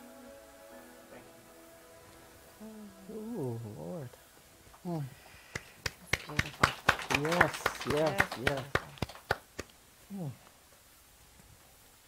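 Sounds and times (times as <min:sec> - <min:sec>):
people clapping: 0:05.5 - 0:09.8.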